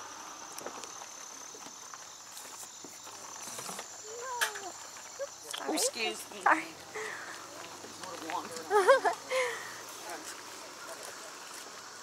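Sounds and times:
insect trilling: 0.0 - 7.8
outdoor background noise: 0.0 - 12.0.

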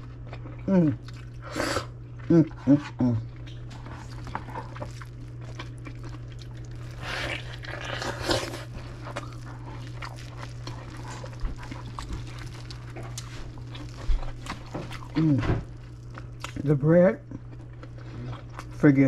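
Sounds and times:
mouth eating sounds: 0.0 - 18.8
steady low hum: 0.0 - 19.0.

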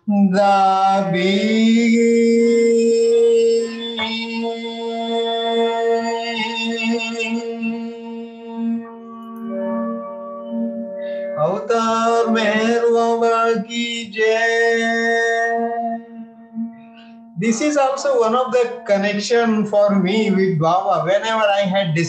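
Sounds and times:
man singing a ballad: 0.0 - 8.2, 11.4 - 16.2, 17.4 - 22.0
sustained accompaniment chord: 0.0 - 20.4.

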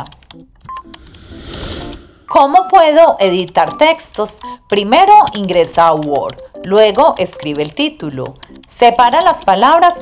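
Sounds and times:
whoosh sound effect: 0.8 - 2.4.

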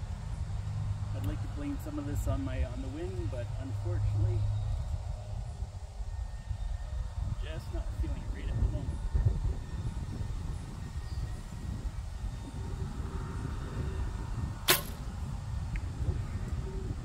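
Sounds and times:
wind rumbling on microphone: 0.0 - 17.0
bowstring snap: 14.7 - 15.1.

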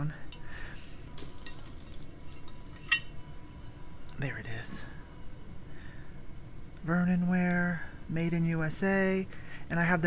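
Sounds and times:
sharp ceramic clink: 2.5 - 3.2.

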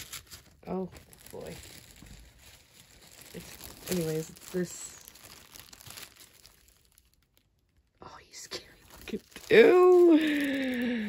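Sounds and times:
plastic wrapping crinkling: 0.0 - 11.0.

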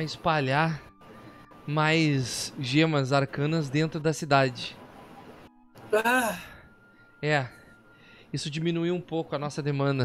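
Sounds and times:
person sighing: 5.9 - 6.7.

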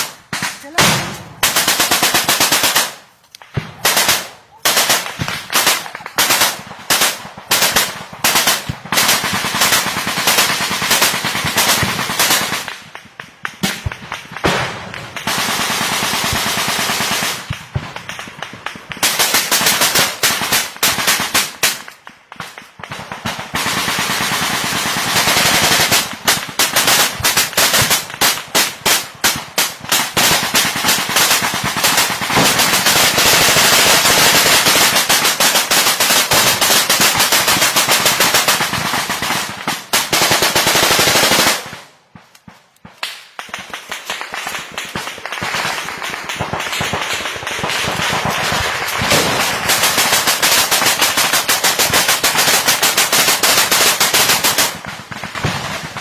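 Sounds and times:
automatic rifle fire: 30.0 - 39.2, 43.6 - 56.0.

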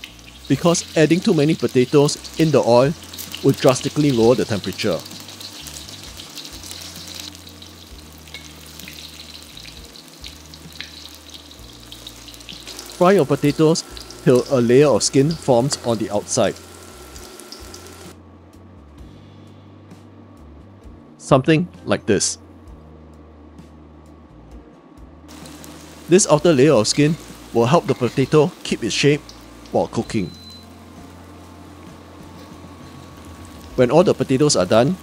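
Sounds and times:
hot oil sizzling and bubbling: 0.0 - 18.2, 25.3 - 35.0.

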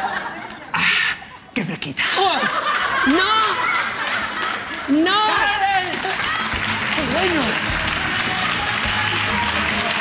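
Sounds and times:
audience clapping: 2.7 - 10.0
background music: 5.5 - 10.0.

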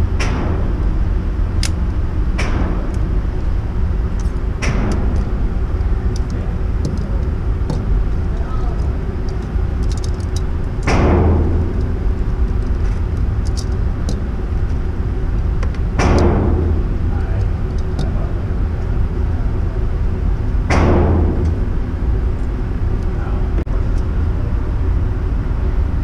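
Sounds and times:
steady low rumble: 0.0 - 26.0
clicks of gear being handled: 1.6 - 1.8, 8.6 - 11.1, 11.7 - 14.8.

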